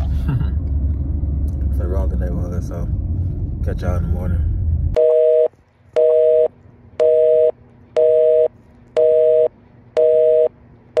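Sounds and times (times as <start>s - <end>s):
telephone busy signal: 5.0s - 10.5s.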